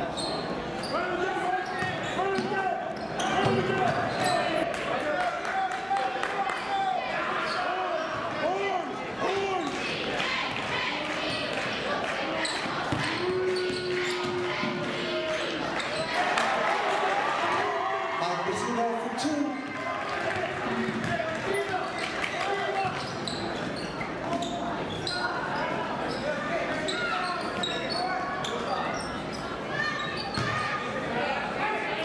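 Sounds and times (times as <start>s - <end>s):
basketball bouncing on court: 3.4s - 4.4s, 12.9s - 14.8s, 30.3s - 30.6s.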